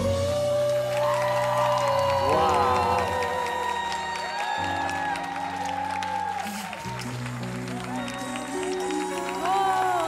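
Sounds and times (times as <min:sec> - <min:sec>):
woman singing a slow ballad: 0:00.0 - 0:04.8, 0:07.9 - 0:10.0.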